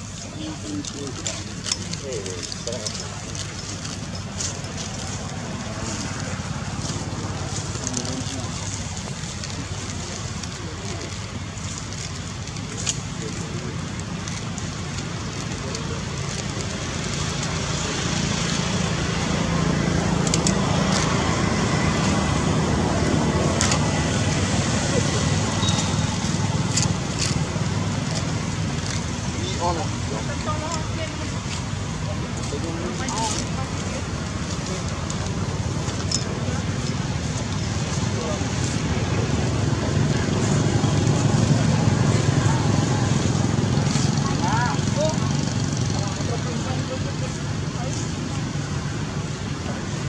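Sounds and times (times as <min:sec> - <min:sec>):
indistinct voices: 0:00.0 - 0:50.0
road traffic rumble: 0:00.0 - 0:50.0.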